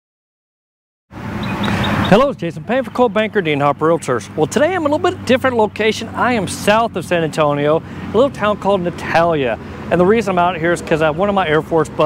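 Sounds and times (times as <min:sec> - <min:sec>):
road traffic noise: 0:01.1 - 0:12.0.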